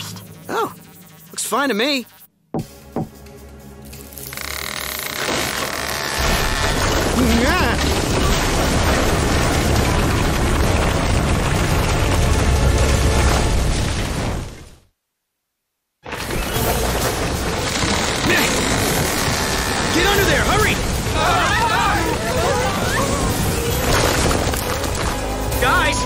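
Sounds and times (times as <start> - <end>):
deep rumble of collapsing rock: 6.2 - 14.8.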